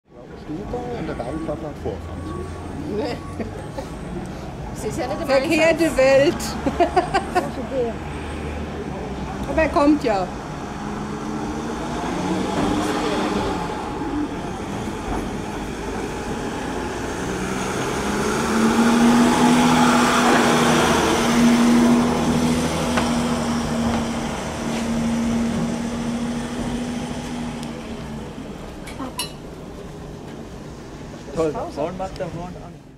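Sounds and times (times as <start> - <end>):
crowd chatter: 0.1 - 18.8
van engine driving past: 6.0 - 28.8.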